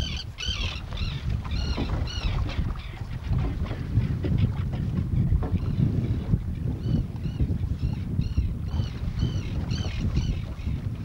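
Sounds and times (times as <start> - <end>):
choppy water: 0.0 - 11.0
wind buffeting microphone: 0.0 - 11.0.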